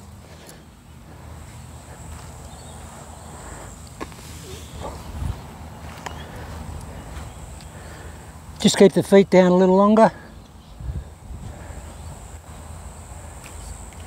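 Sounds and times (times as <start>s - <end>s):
wind rumbling on microphone: 4.3s - 7.9s, 10.6s - 14.0s.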